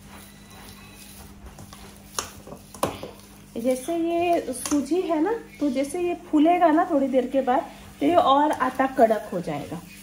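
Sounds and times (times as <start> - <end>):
dough being kneaded by hand: 0.0 - 10.0.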